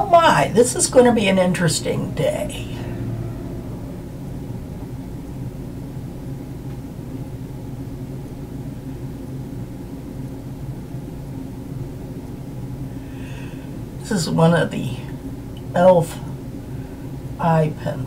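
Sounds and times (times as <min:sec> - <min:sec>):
low room hum: 0:00.0 - 0:18.0.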